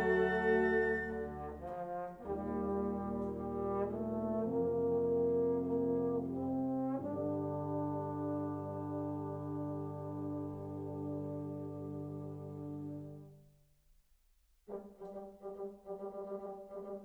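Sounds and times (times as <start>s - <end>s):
wind orchestra brass chords: 0.0s - 13.5s, 14.7s - 17.0s.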